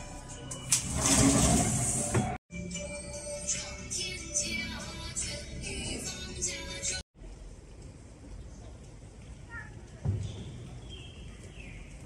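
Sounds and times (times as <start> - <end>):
background music: 0.0 - 7.0
sliding window rolling open: 0.7 - 2.4.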